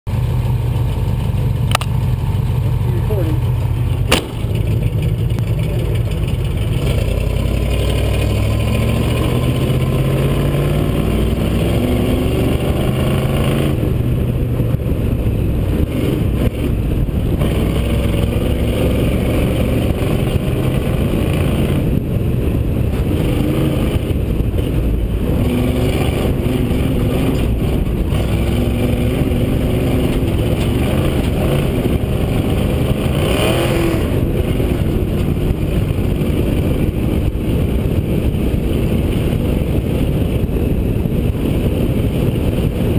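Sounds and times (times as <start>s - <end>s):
wind and road noise: 0.1s - 42.9s
rally car engine accelerating: 0.2s - 42.9s.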